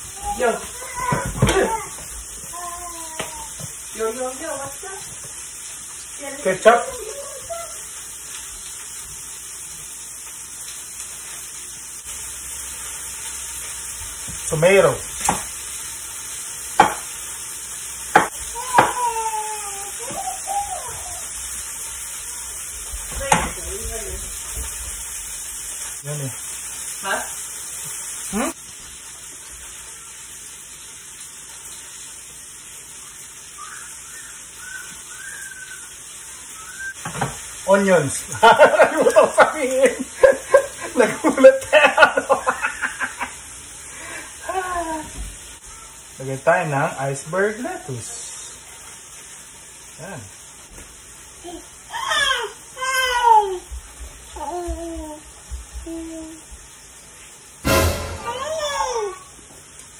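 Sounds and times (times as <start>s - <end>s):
food sizzling in a pan: 0.0s - 59.9s
high-pitched wordless cries: 6.7s - 7.9s
sharp knock: 57.6s - 58.7s.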